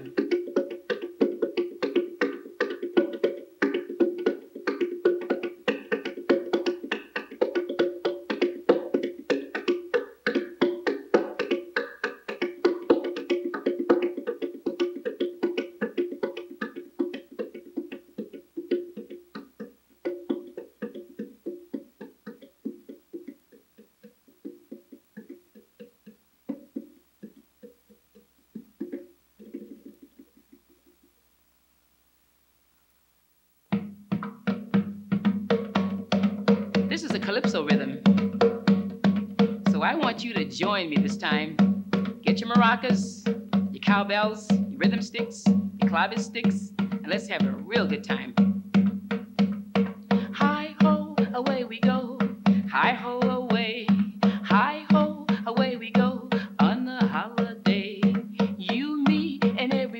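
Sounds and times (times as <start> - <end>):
fingers drumming on box drum: 0.0 - 31.2, 33.7 - 59.9.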